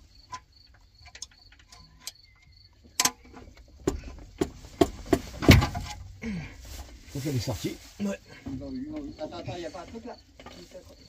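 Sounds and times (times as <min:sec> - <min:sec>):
metal clicks and knocks: 0:00.0 - 0:06.2.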